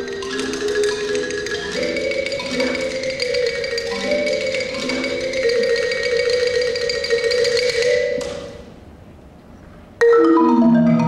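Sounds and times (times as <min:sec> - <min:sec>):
marimba fast repeated strokes: 0:00.0 - 0:08.7, 0:10.0 - 0:11.0.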